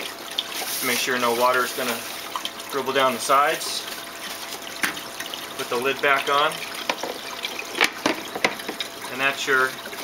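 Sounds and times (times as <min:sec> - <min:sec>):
water running: 0:00.0 - 0:10.0
lid clicking and knocking: 0:06.8 - 0:08.8.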